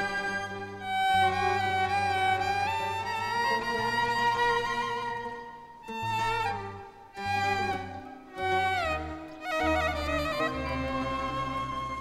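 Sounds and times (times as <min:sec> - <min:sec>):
bowed violin slow melody: 0:00.0 - 0:12.0.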